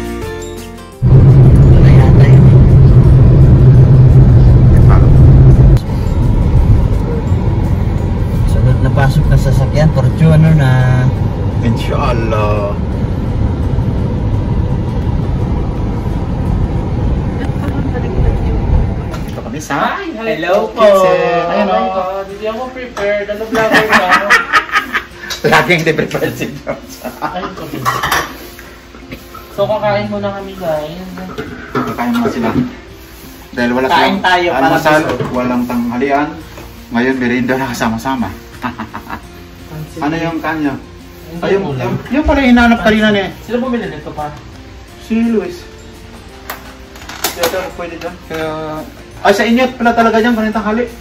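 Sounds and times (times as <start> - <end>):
car engine drone: 1.0 - 19.7
road noise rushing: 1.0 - 19.9
plates and cutlery clattering: 27.7 - 28.6.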